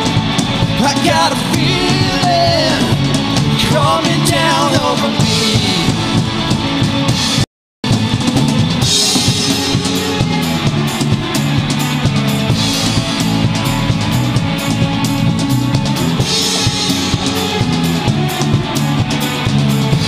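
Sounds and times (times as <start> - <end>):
drum kit beat: 0.0 - 20.0
rock band playing live: 0.0 - 20.0.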